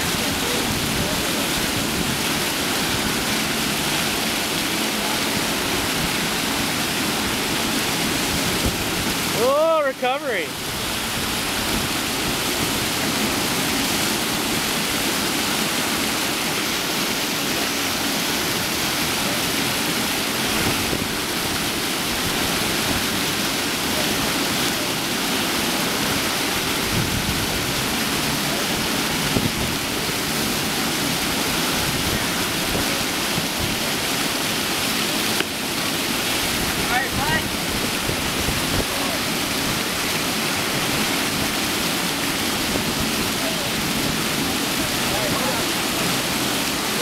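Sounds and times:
water rushing and spraying: 0.0 - 47.0.

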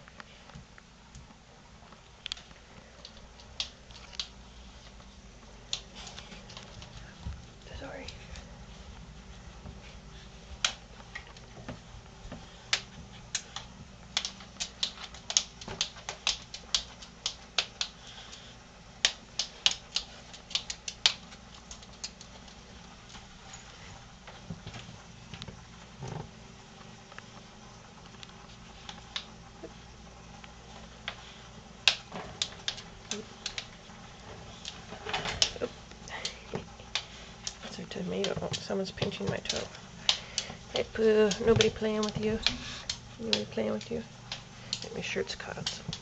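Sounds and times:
claws clicking on wooden floor: 9.8 - 23.3, 30.4 - 46.0.

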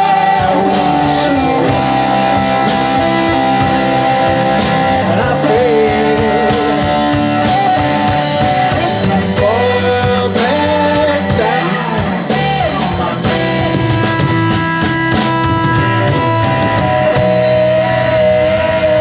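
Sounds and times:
live blues band playing: 0.0 - 19.0.

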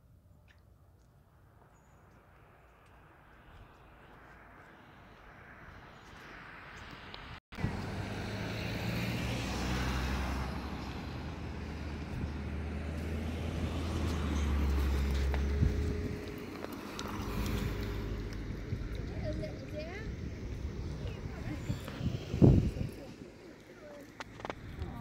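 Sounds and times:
tyre noise on road: 1.0 - 25.0
cars driving by: 3.3 - 25.0.

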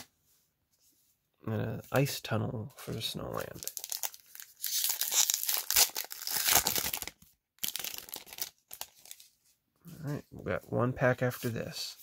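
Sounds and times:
foil wrapper tearing and crinkling: 3.5 - 9.2.

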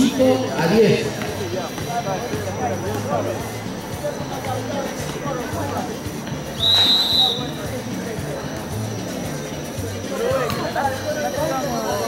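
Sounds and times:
crowd chatter: 0.0 - 12.0
referee's whistle blast: 6.6 - 7.6.

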